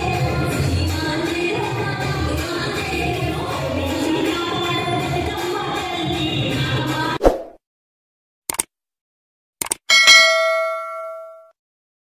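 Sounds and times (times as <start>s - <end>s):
notification bell ding: 9.9s - 11.6s.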